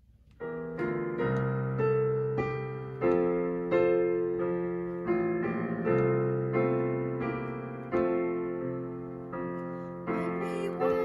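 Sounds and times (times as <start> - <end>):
piano playing slow hymn chords: 0.0 - 11.0.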